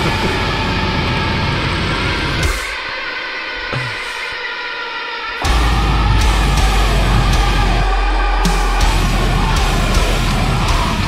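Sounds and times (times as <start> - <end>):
distorted guitars: 0.0 - 11.0
rapid low drumming: 5.4 - 11.0.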